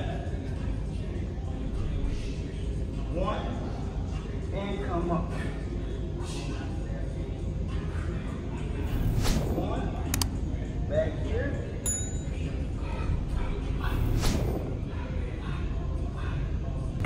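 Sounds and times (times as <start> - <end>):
low room rumble: 0.0 - 17.0
sharp click: 10.1 - 10.3.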